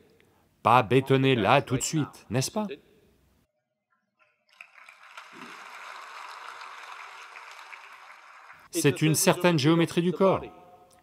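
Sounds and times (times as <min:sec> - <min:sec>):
audience applause: 0:04.5 - 0:08.7.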